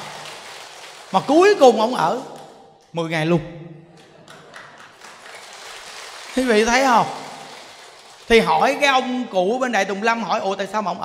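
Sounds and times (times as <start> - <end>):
light scattered claps: 0.0 - 2.6, 4.0 - 9.1
audience laughing softly: 3.9 - 5.3.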